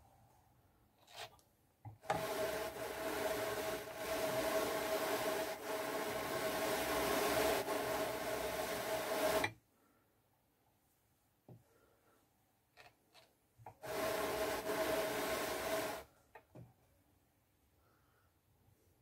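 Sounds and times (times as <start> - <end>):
hand-cranked drum carder whirring: 2.0 - 9.5, 13.8 - 16.1.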